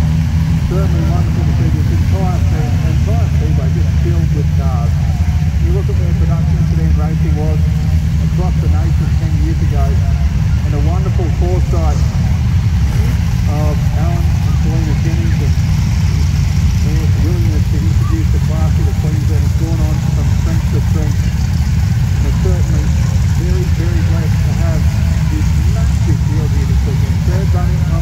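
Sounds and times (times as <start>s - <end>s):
race car engines rumbling: 0.0s - 28.0s
person talking: 0.7s - 7.7s, 13.0s - 15.6s, 16.8s - 21.2s, 22.2s - 28.0s.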